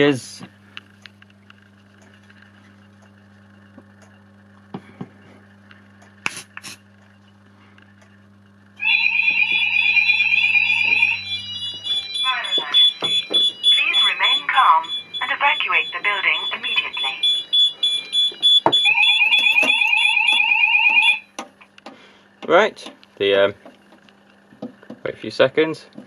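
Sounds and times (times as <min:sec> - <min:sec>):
faint steady hum: 0:00.0 - 0:26.0
warbling fire alarm tone: 0:08.8 - 0:21.4
recorded spoken alarm message: 0:10.2 - 0:18.1.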